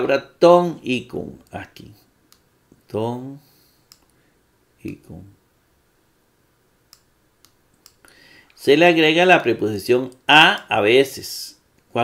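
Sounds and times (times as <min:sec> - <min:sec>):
computer mouse clicks: 0:02.3 - 0:02.5, 0:03.8 - 0:04.2, 0:06.9 - 0:08.1.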